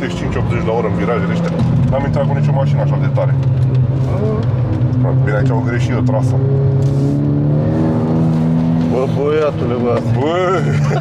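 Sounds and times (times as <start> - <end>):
car engine drone under load: 0.0 - 11.0.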